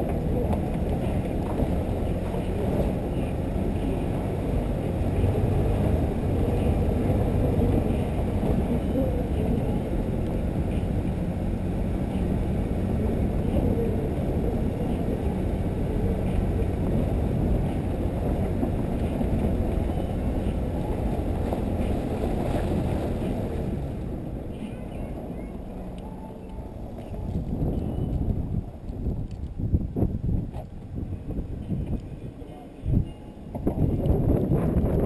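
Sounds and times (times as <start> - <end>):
vehicle driving noise: 0.0 - 35.0
wind noise on microphone: 0.0 - 35.0.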